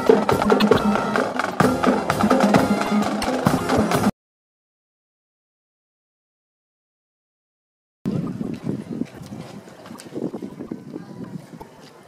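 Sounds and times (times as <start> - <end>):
faint outdoor background noise: 8.1 - 12.0
wind buffeting microphone: 8.1 - 12.0.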